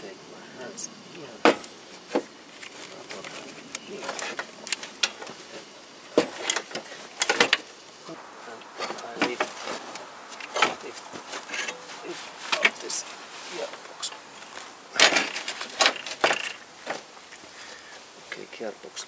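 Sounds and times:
metal knocks and clunks: 0:01.4 - 0:02.3, 0:06.1 - 0:07.7, 0:08.7 - 0:13.0, 0:14.9 - 0:17.1.

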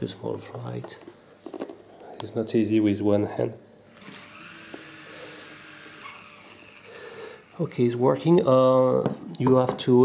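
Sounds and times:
rc helicopter motor whine: 0:03.9 - 0:08.0.

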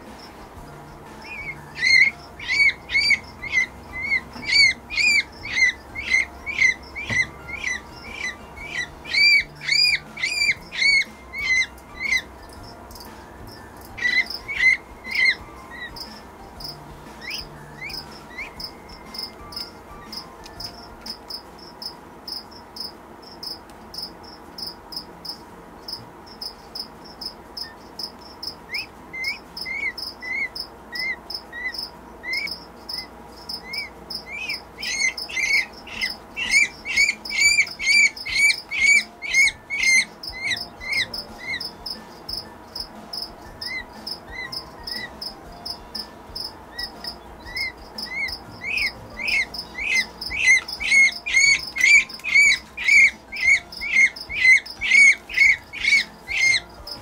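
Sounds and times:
chick peeping: 0:00.0 - 0:21.4, 0:27.2 - 0:57.0
faint high chirping: 0:00.0 - 0:57.0.

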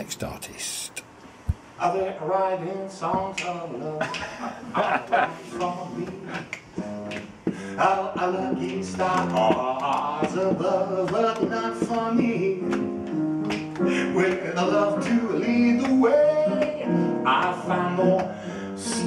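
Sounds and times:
man singing jazz: 0:01.8 - 0:04.2, 0:05.2 - 0:06.5, 0:07.7 - 0:13.0, 0:13.8 - 0:19.0
man laughing: 0:04.0 - 0:05.4
piano chords: 0:04.6 - 0:19.0.

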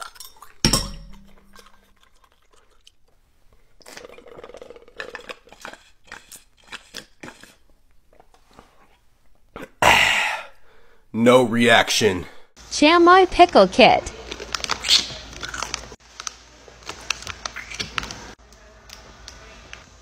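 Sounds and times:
glass bottle knock: 0:00.6 - 0:01.4
gulping and swallowing: 0:03.6 - 0:08.3
breathy exhale: 0:09.8 - 0:11.1.

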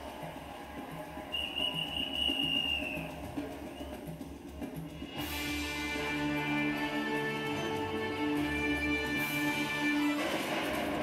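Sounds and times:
long high whistle blast: 0:01.3 - 0:03.1.

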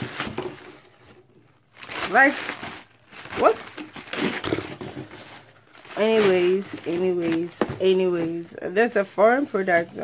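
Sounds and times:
packaging rustling and crinkling: 0:00.0 - 0:10.0.

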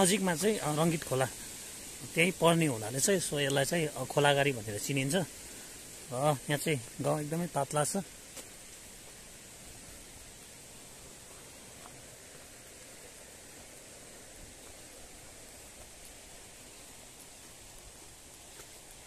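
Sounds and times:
faint outdoor hiss: 0:00.0 - 0:19.0.

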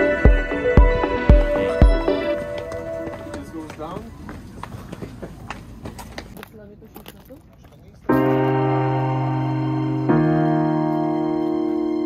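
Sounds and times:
background music: 0:00.0 - 0:03.6, 0:08.1 - 0:12.0
footsteps on stone steps: 0:01.3 - 0:08.8.

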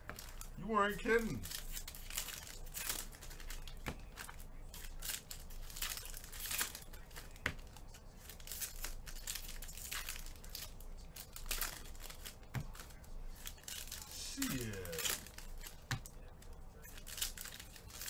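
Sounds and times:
foil wrappers tearing and crinkling: 0:01.2 - 0:07.4, 0:08.2 - 0:18.0.

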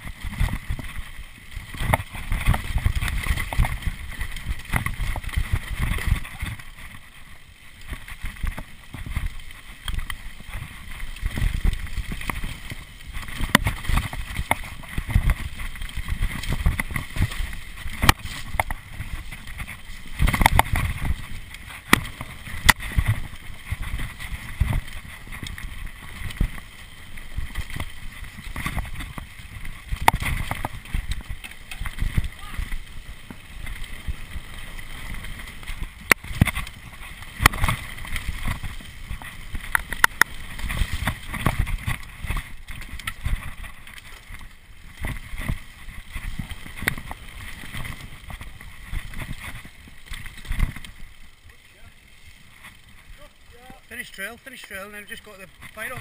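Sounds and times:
bike knocking and rattling: 0:00.0 - 0:56.0
bike tyres rumbling on dirt: 0:00.0 - 0:56.0.

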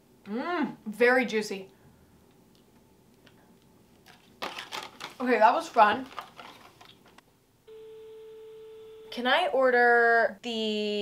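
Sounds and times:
steady telephone tone: 0:07.7 - 0:09.2.

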